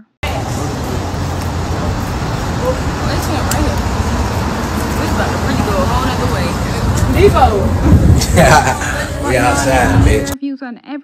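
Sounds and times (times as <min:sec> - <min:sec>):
faint voices: 0:00.2 - 0:10.4
road vehicle rumble: 0:00.2 - 0:10.4
traffic hiss: 0:00.2 - 0:10.4.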